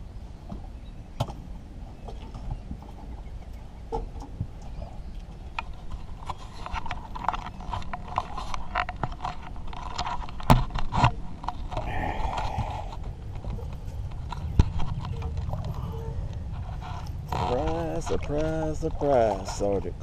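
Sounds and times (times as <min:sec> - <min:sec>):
fishing tackle clicks and knocks: 0:03.9 - 0:15.8
steady low rumble: 0:11.1 - 0:20.0.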